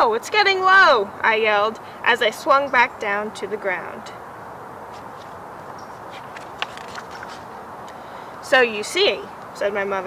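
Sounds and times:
steady background hiss: 0.0s - 10.0s
book page turning: 4.9s - 7.6s.

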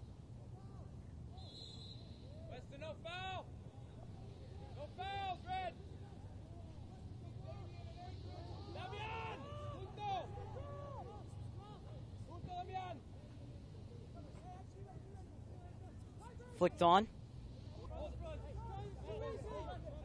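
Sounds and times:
distant players shouting: 1.4s - 13.7s.

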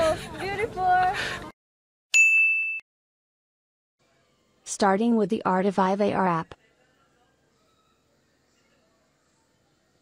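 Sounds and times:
bell-like ding: 2.1s - 2.8s.

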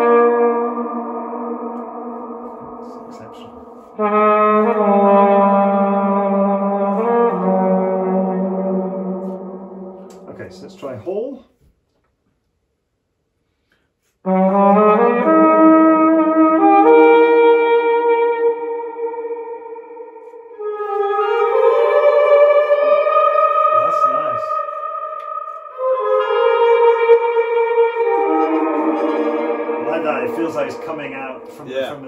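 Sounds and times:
muted trumpet with reverb: 0.0s - 10.9s, 14.1s - 32.0s.

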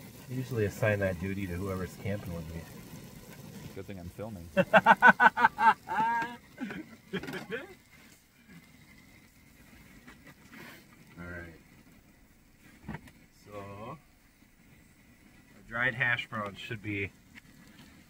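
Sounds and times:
person laughing: 4.6s - 7.8s.

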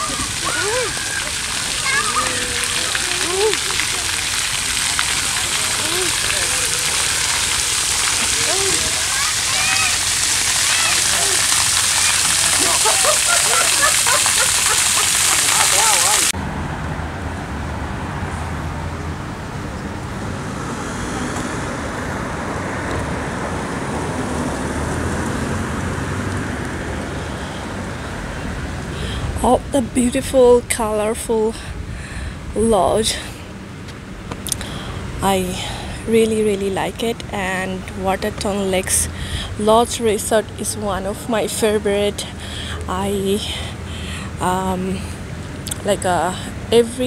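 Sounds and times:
children calling out: 0.0s - 4.4s, 5.2s - 16.3s
water jets hissing: 0.0s - 16.4s.

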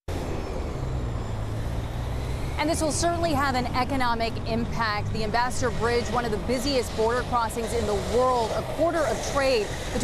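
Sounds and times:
low rumble of road traffic: 0.1s - 10.0s.

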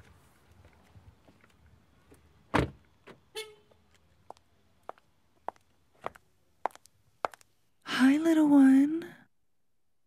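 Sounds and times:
car door slamming: 2.5s - 2.8s.

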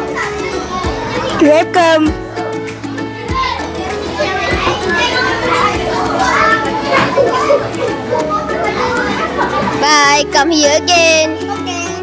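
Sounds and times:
background music with held tones: 0.0s - 12.0s
children chattering: 0.0s - 12.0s.

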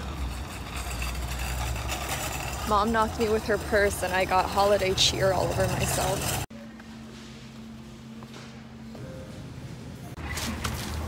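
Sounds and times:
low outdoor rumble: 0.0s - 10.2s.

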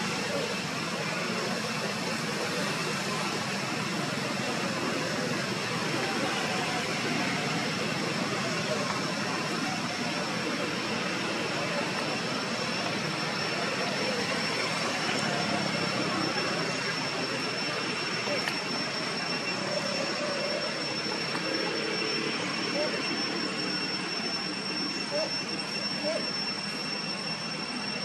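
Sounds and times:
faint distant voices: 0.0s - 28.0s
high even whine: 0.0s - 28.0s
outdoor background noise: 0.0s - 28.0s.

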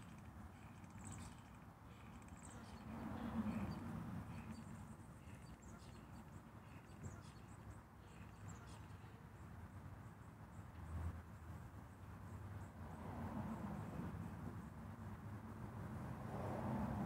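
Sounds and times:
small birds chirping: 0.0s - 10.8s.

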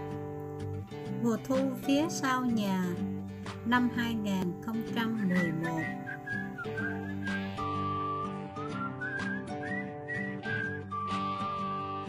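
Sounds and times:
held chords and plucked notes: 0.0s - 12.0s
whistled melody: 4.9s - 12.0s.

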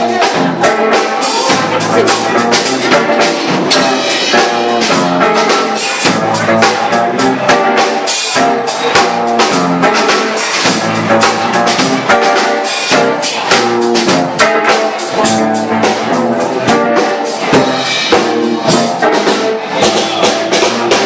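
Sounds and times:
drum kit beat: 0.0s - 21.0s
electric guitar lines: 0.0s - 21.0s.

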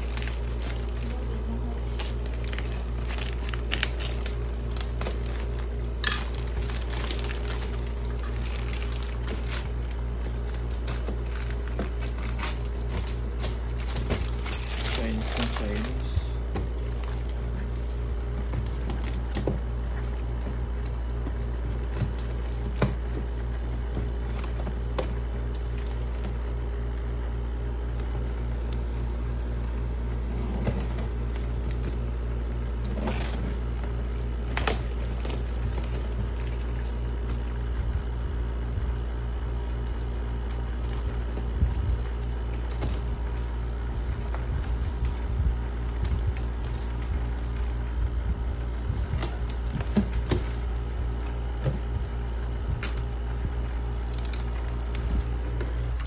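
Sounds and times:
plastic bag crinkling: 0.0s - 56.0s
steady low hum: 0.0s - 56.0s.

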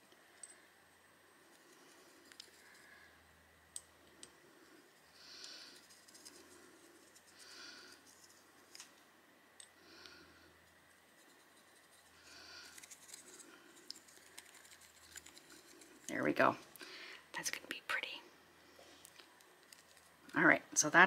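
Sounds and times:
paintbrush scratching and ticking: 5.5s - 8.4s, 10.9s - 16.2s.

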